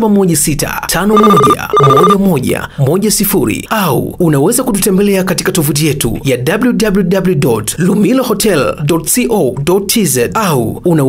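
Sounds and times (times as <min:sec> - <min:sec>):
person reading aloud: 0:00.0 - 0:03.9
telephone ringing: 0:01.1 - 0:02.2.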